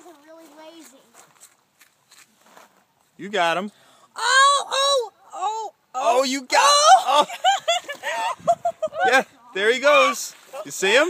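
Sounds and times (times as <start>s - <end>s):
high-pitched wordless voice: 0.0s - 1.2s, 4.2s - 6.6s.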